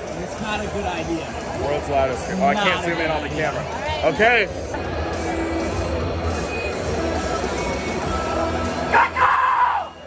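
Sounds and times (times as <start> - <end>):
music over loudspeakers: 0.0 - 10.0
stadium crowd noise: 0.0 - 10.0.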